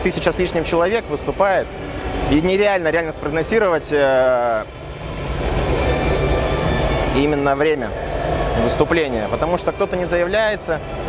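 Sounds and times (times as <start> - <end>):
sports hall background rumble: 0.0 - 11.0.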